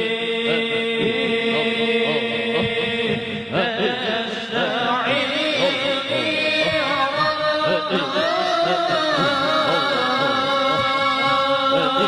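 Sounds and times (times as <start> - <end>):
person chanting devotional song: 0.0 - 12.0.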